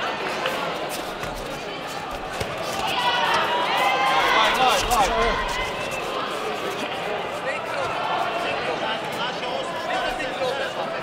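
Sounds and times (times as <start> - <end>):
voices echoing in large hall: 0.0 - 11.0.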